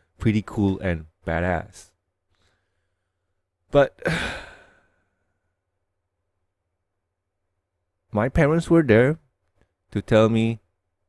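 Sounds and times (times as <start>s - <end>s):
man sighing heavily: 4.0s - 5.0s.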